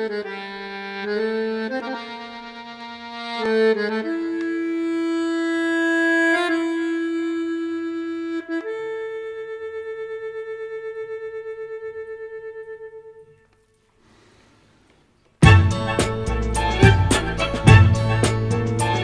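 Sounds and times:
accordion notes with tremolo: 0.0 - 13.2, 15.4 - 19.0.

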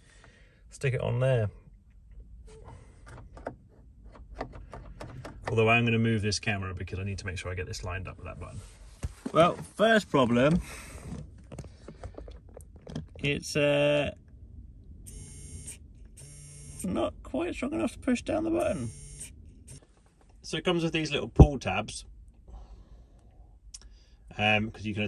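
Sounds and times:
small electric motor buzzing: 15.1 - 16.8, 18.7 - 19.8.

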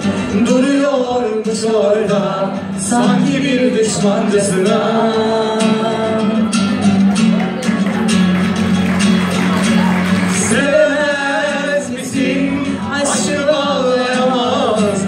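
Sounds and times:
acoustic guitar: 0.0 - 15.0.

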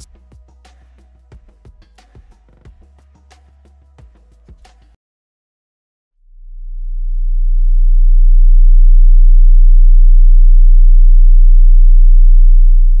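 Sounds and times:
low sine test tone hum: 6.2 - 13.0.

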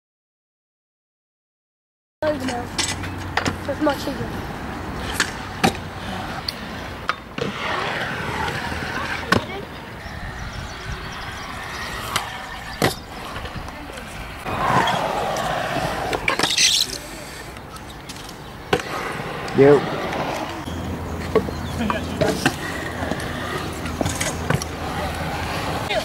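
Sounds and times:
scooter wheels rolling on concrete: 2.2 - 26.0.

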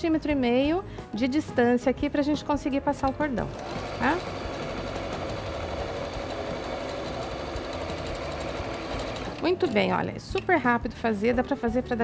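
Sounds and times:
electric sewing machine running: 3.4 - 9.7.

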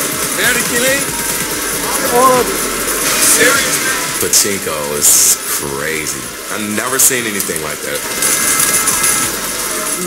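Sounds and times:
machine music: 0.0 - 10.0.

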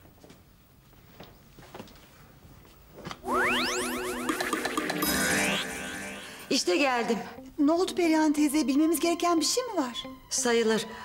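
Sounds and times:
fast upward sweep: 3.2 - 6.7
shimmering tones: 3.3 - 7.2.

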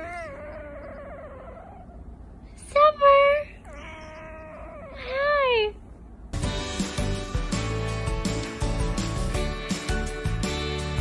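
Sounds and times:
cat meowing: 3.6 - 5.2.

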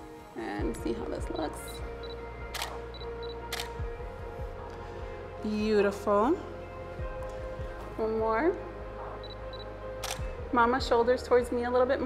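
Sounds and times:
background music: 0.0 - 12.0
camera shutter click: 2.5 - 2.9, 3.5 - 3.8, 10.0 - 10.3.

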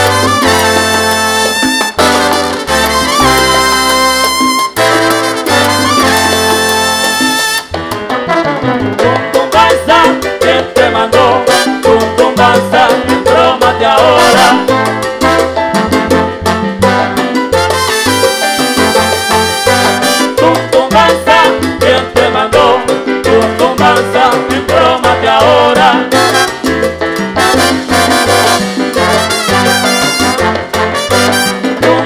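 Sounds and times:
brass chords: 0.0 - 9.3, 11.5 - 12.1, 14.2 - 20.7, 26.1 - 32.0
salsa band playing: 0.0 - 32.0.

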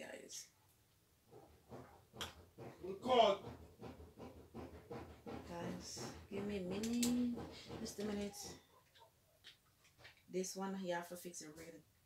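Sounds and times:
woman making wordless vocal sounds: 5.5 - 8.5
woman humming: 5.6 - 8.5.

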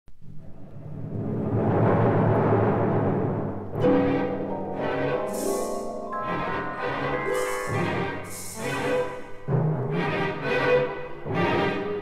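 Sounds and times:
low drum roll: 0.3 - 4.1
sustained orchestral notes: 0.5 - 12.0.

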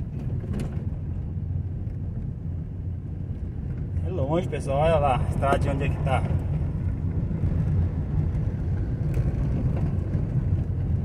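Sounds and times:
vehicle driving on dirt road: 0.0 - 11.0.

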